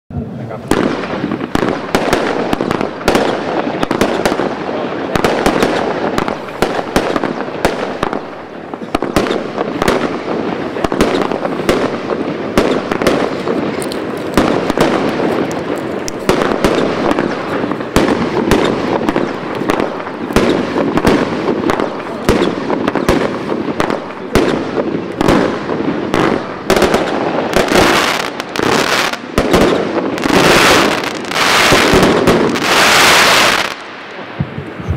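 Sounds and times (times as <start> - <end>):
fireworks bursting: 0.1 - 34.9
fireworks firing shots: 0.2 - 34.9
hiss of burning fireworks: 0.2 - 34.9.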